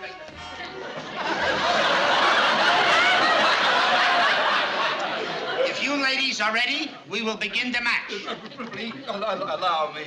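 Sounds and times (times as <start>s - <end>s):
audience laughing: 0.7s - 6.2s, 8.0s - 10.0s.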